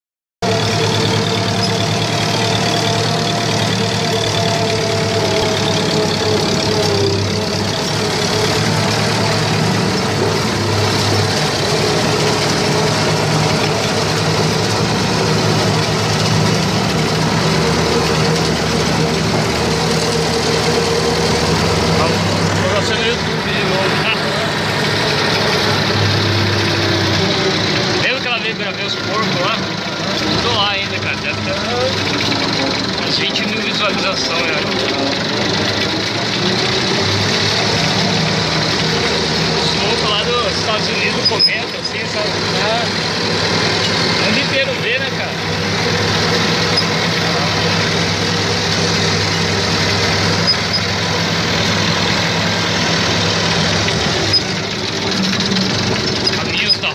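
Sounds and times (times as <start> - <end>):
tractor diesel engine running: 0.4 - 56.9.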